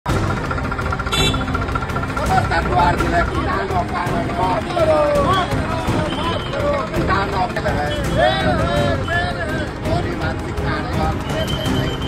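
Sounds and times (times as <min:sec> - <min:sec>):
diesel tractor engine knocking: 0:00.0 - 0:08.9, 0:09.6 - 0:11.2.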